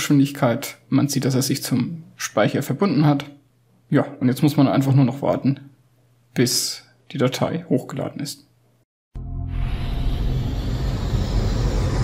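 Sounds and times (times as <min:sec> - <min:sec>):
deep rumble: 0:09.2 - 0:12.0.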